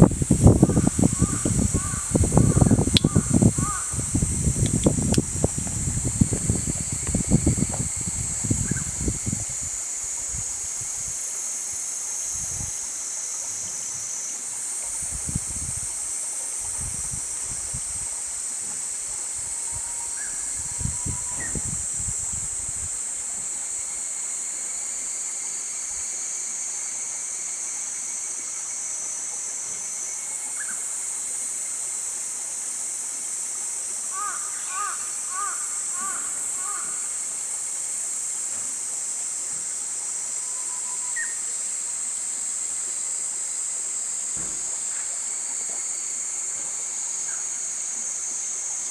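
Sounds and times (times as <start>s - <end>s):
wind on microphone: 0.0s - 11.2s, 12.3s - 12.8s, 14.9s - 16.0s, 16.6s - 23.0s
insects chirring: 0.0s - 48.9s.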